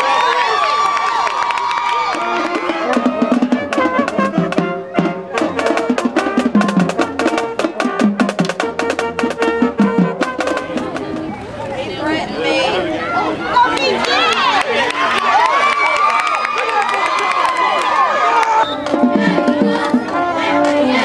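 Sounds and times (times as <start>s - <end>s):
crowd noise: 0.0s - 21.0s
trombones and saxophones: 2.0s - 13.8s, 18.0s - 21.0s
drum beats: 2.1s - 11.4s, 18.5s - 21.0s.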